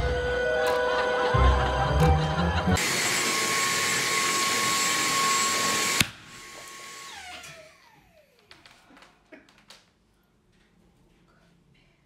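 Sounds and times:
stick vacuum high whine: 0.0s - 8.5s.

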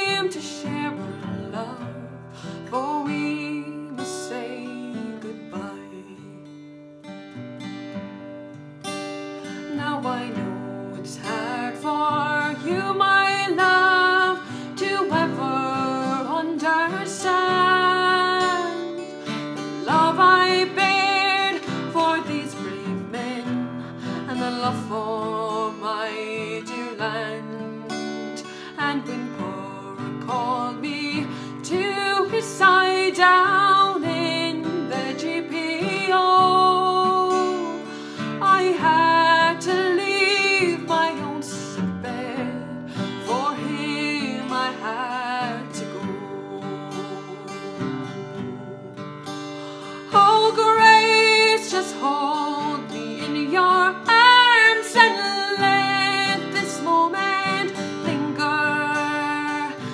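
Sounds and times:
woman singing a slow ballad: 0.0s - 6.9s, 9.2s - 59.9s
strummed acoustic guitar: 0.0s - 59.9s.

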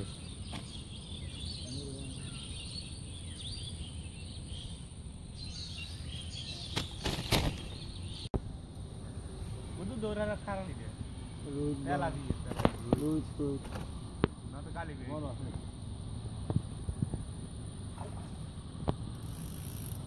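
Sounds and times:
faint bird chirps: 0.0s - 8.3s
high insect drone: 8.5s - 20.0s.

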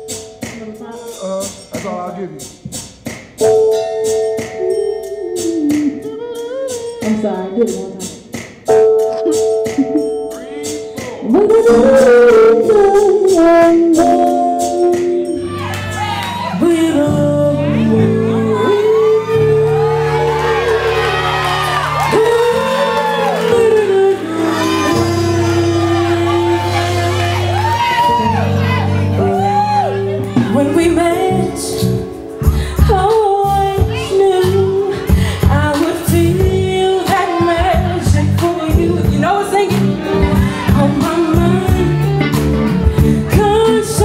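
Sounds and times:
person singing: 0.0s - 2.4s, 3.4s - 15.6s, 16.4s - 44.0s
light percussion beat: 0.0s - 16.0s
live band playing rhythm and blues: 0.0s - 44.0s
held keyboard chord: 3.4s - 7.7s, 8.6s - 36.9s, 37.5s - 44.0s
audience whooping: 15.3s - 16.9s, 18.3s - 30.4s.

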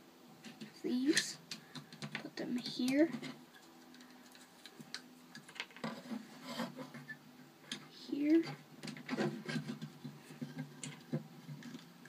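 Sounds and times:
plastic scrape: 5.7s - 7.2s, 9.0s - 11.8s.

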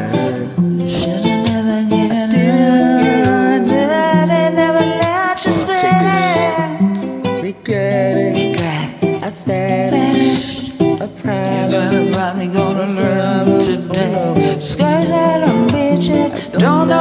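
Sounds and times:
acoustic guitar strummed chords: 0.0s - 17.0s.

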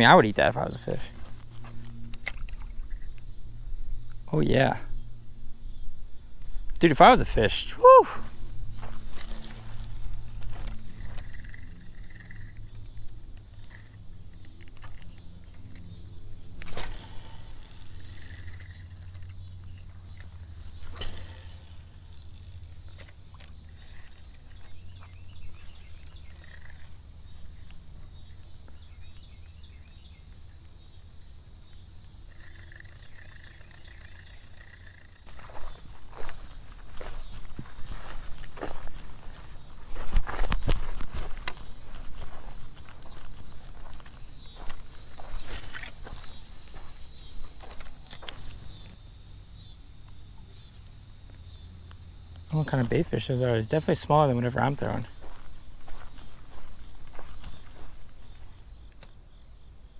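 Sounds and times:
footsteps through grass: 8.2s - 11.4s, 35.3s - 48.9s, 54.1s - 58.7s
fishing reel clicks: 9.1s - 12.9s, 16.6s - 24.6s, 26.0s - 26.9s, 32.2s - 35.8s.

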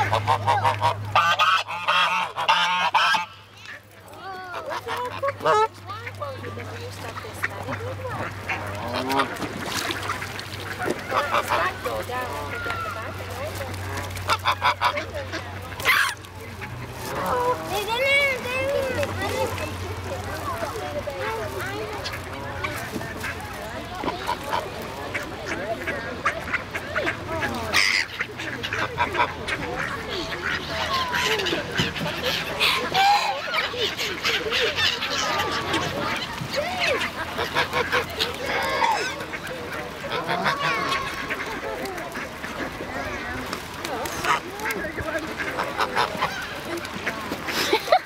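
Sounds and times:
geese honking: 0.0s - 48.0s.

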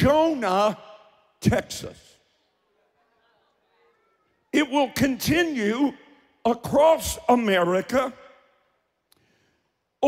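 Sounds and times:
man speaking into microphone: 0.0s - 2.3s, 4.5s - 8.7s.

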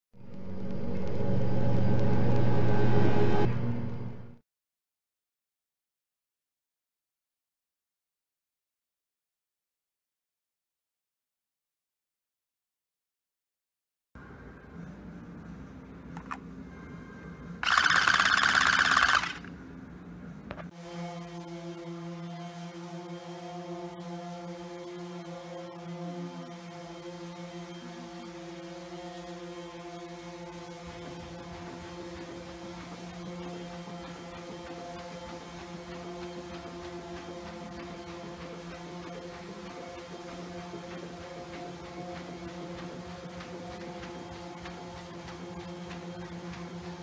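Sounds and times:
droning hum with several tones: 0.2s - 4.4s, 14.2s - 47.0s
low rumbling drone: 0.2s - 4.4s
toy buzzing rattle: 17.6s - 19.5s.

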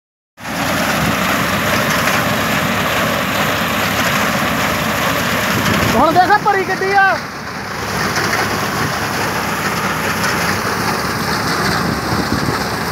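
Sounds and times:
tractor rumble: 0.4s - 12.9s
reaper cutting wheat: 7.5s - 12.9s.

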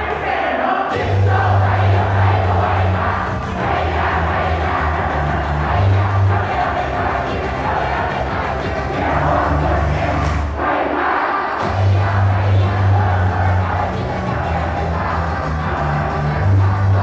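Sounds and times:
crowd shouting chanted calls: 0.0s - 17.0s
pop song through pa: 0.0s - 17.0s.

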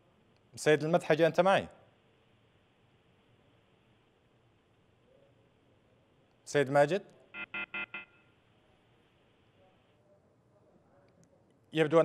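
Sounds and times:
quick electronic beeps on phone line: 7.4s - 8.3s.

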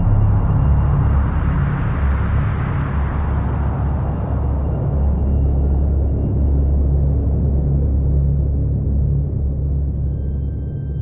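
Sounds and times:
deep rumbling drone: 0.0s - 11.0s.

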